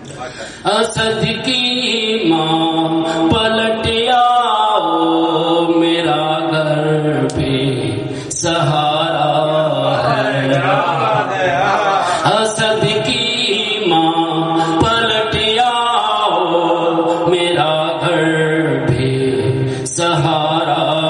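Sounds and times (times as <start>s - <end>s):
man chanting into a microphone: 0.0s - 21.0s.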